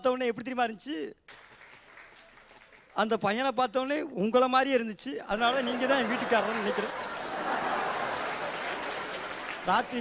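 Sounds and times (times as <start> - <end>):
studio audience applause: 1.3 - 3.2, 5.4 - 10.0.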